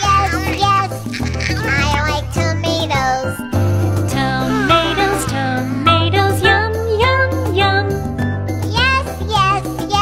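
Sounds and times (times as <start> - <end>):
childlike voice singing: 0.0 - 3.4, 4.2 - 6.4.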